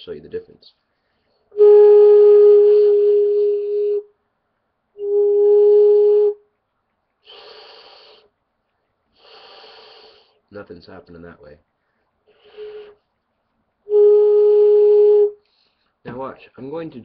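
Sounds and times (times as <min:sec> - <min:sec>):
wooden flute held notes: 0:01.5 - 0:04.2, 0:05.0 - 0:06.6, 0:12.3 - 0:13.0, 0:13.8 - 0:15.5
airy breath into flute: 0:07.2 - 0:08.3, 0:09.1 - 0:10.4, 0:11.9 - 0:13.0, 0:14.5 - 0:16.0.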